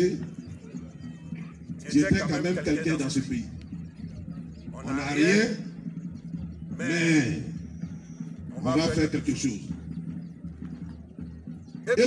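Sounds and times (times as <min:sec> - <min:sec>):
man speaking through microphone: 0:00.0 - 0:00.4, 0:01.7 - 0:03.7, 0:04.6 - 0:05.9, 0:06.7 - 0:07.7, 0:08.4 - 0:09.8.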